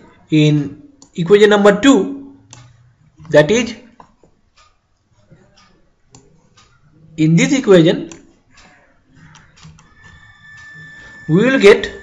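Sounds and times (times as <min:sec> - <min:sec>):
mouse scroll wheel clicking: 0:08.1 - 0:10.7
faint high-pitched tone: 0:09.8 - 0:12.0.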